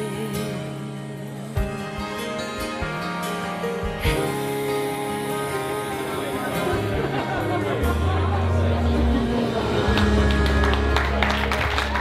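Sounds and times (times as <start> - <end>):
slow recorded song: 0.0 - 12.0.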